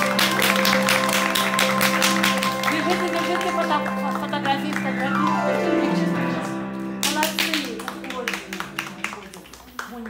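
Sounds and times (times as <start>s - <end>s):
hand clapping: 0.0s - 5.4s, 6.4s - 10.0s.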